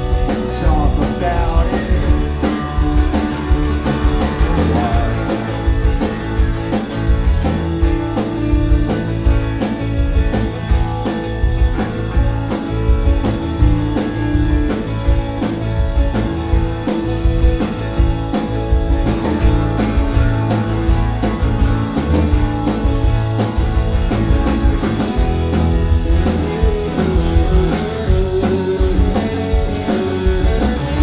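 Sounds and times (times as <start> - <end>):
electric guitar: 0.0 - 31.0
steady drum beat: 0.0 - 31.0.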